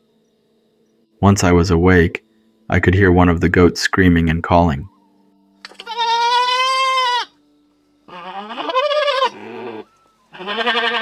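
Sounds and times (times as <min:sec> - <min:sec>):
goat bleating: 0:05.7 - 0:07.4, 0:08.1 - 0:11.0.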